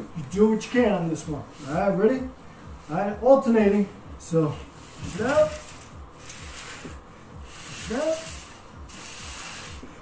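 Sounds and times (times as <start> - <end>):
paper plates scraping on floor: 4.8 - 9.9.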